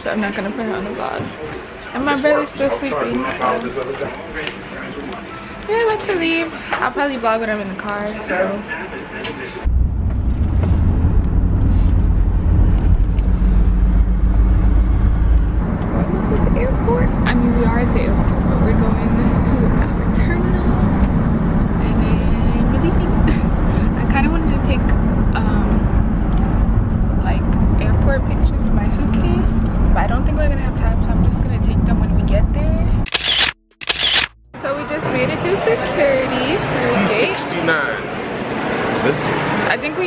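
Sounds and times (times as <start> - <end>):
car cabin road rumble: 9.6 - 33.1.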